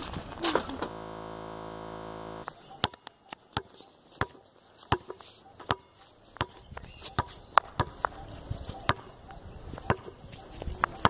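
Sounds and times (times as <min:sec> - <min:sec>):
steady buzz: 0:00.7 - 0:02.5
basketball bouncing on concrete: 0:02.8 - 0:03.0, 0:03.6 - 0:08.0, 0:09.9 - 0:10.1.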